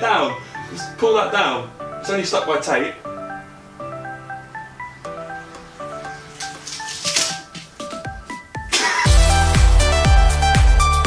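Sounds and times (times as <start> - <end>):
plinking background music: 0.0 - 11.0
fabric curtain rustling: 5.5 - 9.0.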